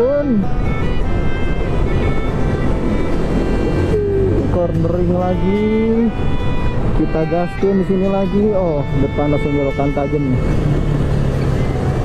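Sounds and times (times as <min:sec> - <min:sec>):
motorcycle engine: 0:00.0 - 0:05.6
wind noise on microphone: 0:00.0 - 0:09.2
background music: 0:00.0 - 0:12.0.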